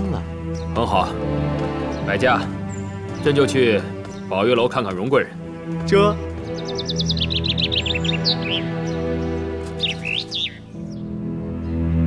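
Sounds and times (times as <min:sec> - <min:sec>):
background music with low notes: 0:00.0 - 0:12.0
small birds chirping: 0:00.0 - 0:12.0.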